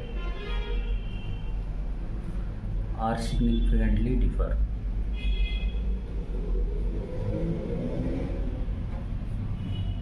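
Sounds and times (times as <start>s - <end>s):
drone rising and falling: 6.0s - 9.4s.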